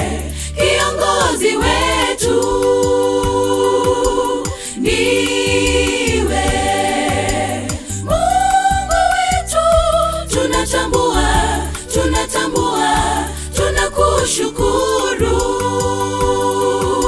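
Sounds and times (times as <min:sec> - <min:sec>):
girls' choir singing: 0:00.0 - 0:17.0
low accompaniment with beat: 0:00.0 - 0:17.0.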